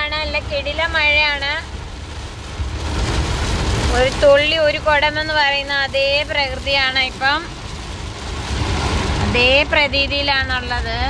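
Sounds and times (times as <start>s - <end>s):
heavy rain drumming on car: 0.0s - 11.0s
low road rumble: 0.0s - 11.0s.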